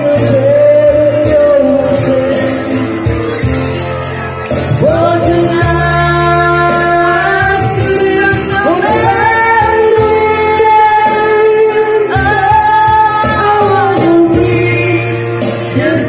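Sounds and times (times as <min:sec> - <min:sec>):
man singing karaoke: 0:00.0 - 0:03.5, 0:04.6 - 0:16.0
backing track music: 0:00.0 - 0:16.0.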